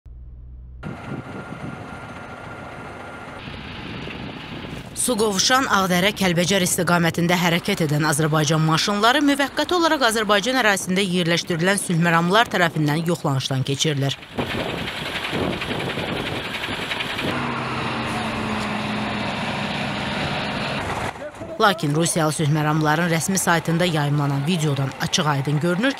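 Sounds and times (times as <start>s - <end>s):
low hum: 0.1s - 5.0s
heavy trucks rumbling: 0.1s - 25.9s.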